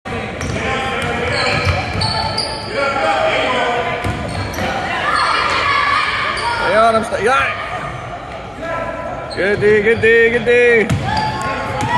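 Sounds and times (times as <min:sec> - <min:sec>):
voices in a gym: 0:00.0 - 0:11.9.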